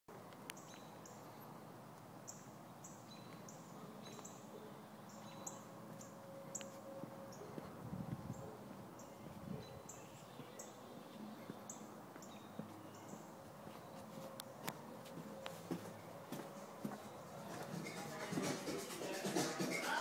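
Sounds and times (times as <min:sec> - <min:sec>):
small bird chirping: 0:02.2 - 0:06.7.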